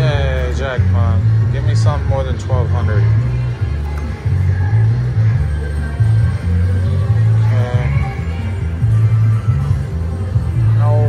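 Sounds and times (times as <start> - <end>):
slot machine music with heavy bass: 0.0 - 11.0.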